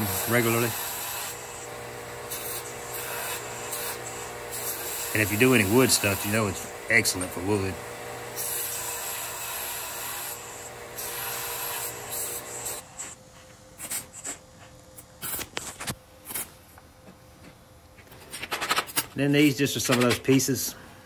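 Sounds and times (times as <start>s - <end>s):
belt sander grinding steel: 0.0s - 13.2s.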